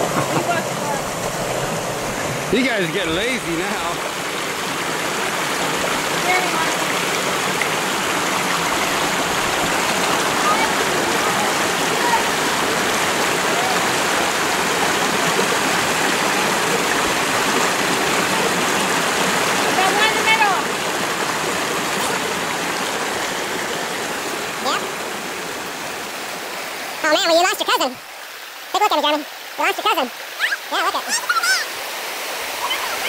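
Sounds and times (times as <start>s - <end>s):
creek water rushing over boulders: 0.0s - 33.0s.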